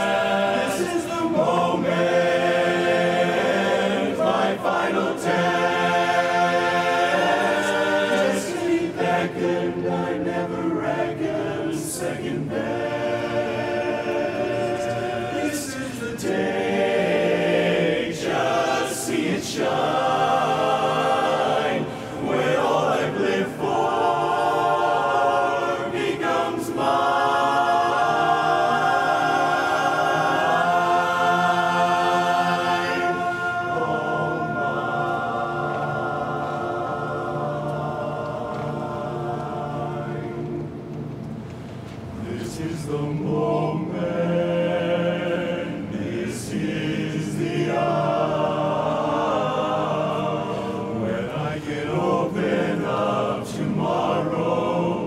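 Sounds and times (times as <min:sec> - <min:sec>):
male chorus singing a cappella: 0:00.0 - 0:41.1, 0:42.2 - 0:55.0.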